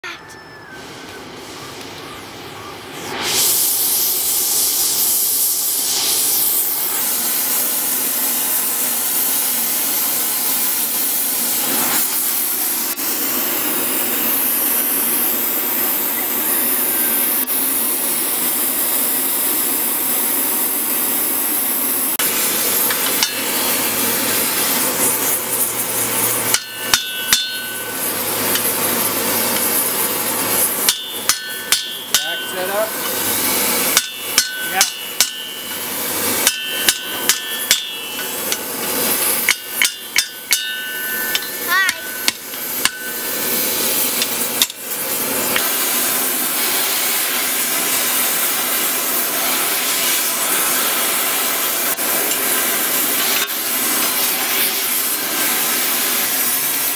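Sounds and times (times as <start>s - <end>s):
gas torch hissing: 0.8s - 56.9s
hammer striking steel on anvil: 22.8s - 25.4s, 26.2s - 29.8s, 30.5s - 44.8s, 52.2s - 53.7s.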